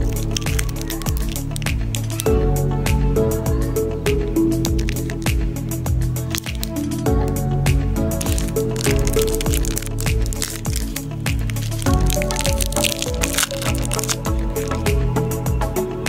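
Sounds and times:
background music with steady beat: 0.0 - 16.0.

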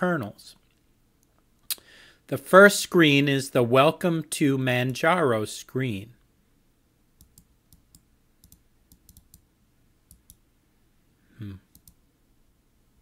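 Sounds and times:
computer mouse clicking: 7.2 - 9.4, 10.1 - 10.4, 11.7 - 12.0
short vocal sound: 11.3 - 11.8.

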